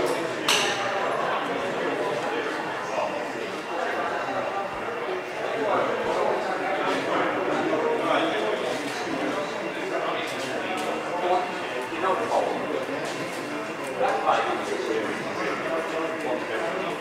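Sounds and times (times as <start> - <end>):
indistinct chatter in echoing hall: 0.0 - 17.0.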